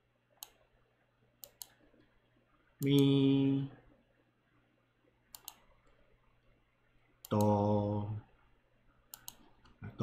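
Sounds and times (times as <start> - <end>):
computer mouse clicks: 0.3 - 0.7, 1.4 - 2.1, 5.3 - 6.0, 7.2 - 7.6, 9.1 - 9.8.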